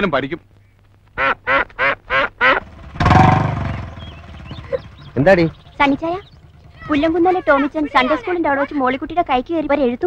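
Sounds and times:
chicken squawking: 1.2 - 2.7, 3.8 - 8.3
rough burst of noise: 2.6 - 7.4.

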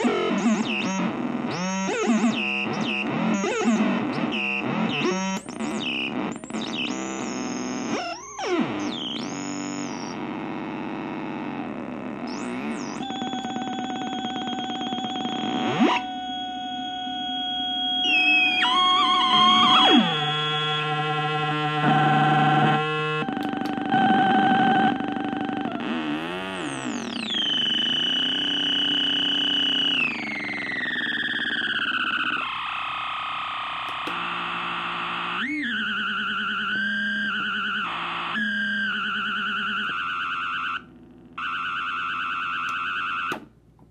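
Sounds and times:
harsh electronic oscillator tones: 0.0 - 43.5.

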